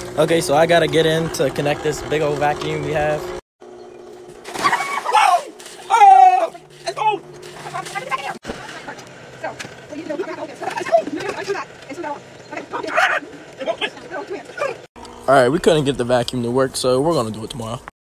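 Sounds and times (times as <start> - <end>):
voices talking and calling out: 4.6 - 17.5.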